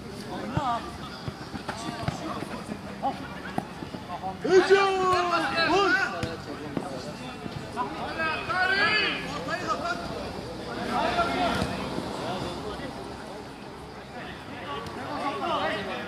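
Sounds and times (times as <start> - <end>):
players shouting: 0.4 - 6.9, 7.7 - 12.6.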